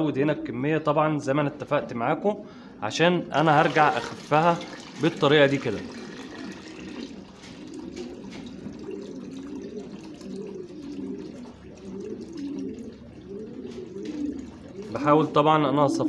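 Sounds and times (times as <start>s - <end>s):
liquid pouring into water: 3.4s - 13.6s.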